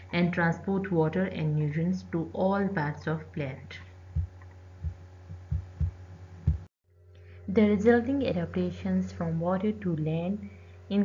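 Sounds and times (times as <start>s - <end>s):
steady low hum: 0.0s - 11.0s
dull low thumps: 4.1s - 6.7s.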